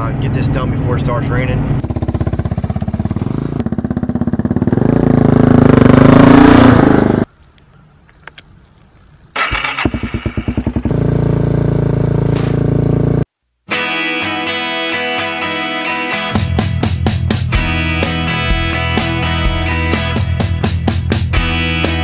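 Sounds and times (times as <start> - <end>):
atv engine running: 1.8 - 7.2, 9.4 - 13.2
engine starting and idling: 9.3 - 10.9.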